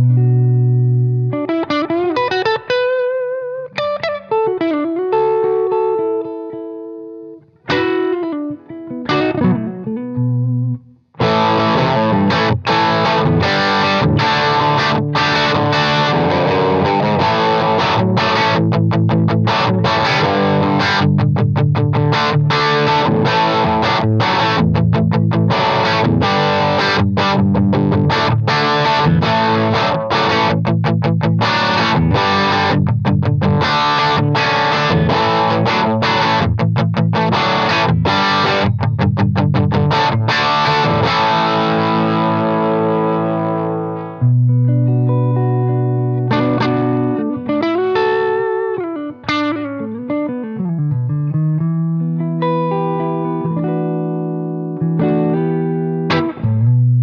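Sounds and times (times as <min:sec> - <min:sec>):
electric guitar lead lines: 0:00.0 - 0:57.0
overdriven electric guitar: 0:00.0 - 0:57.0.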